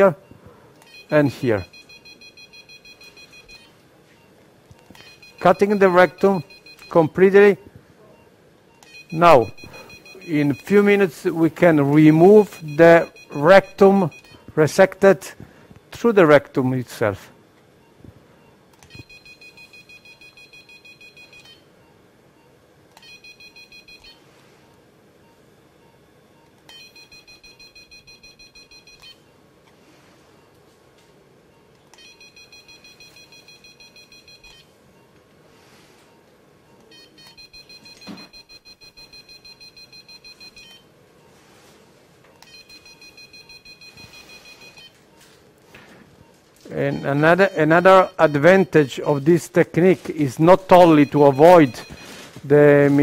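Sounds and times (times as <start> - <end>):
high rapidly pulsing beep: 50.4 - 52.1.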